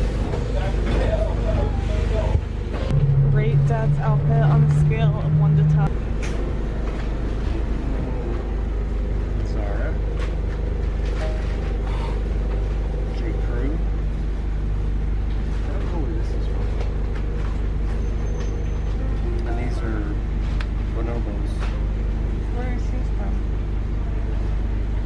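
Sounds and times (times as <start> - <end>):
bus engine rumble: 0.0 - 25.0
faint passenger voices: 0.2 - 5.9.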